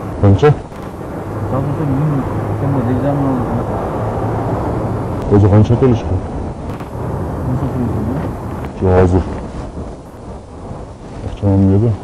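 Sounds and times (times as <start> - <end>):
vehicle low rumble: 0.0 - 12.0
men talking: 0.2 - 4.1, 5.1 - 9.8, 11.2 - 12.0.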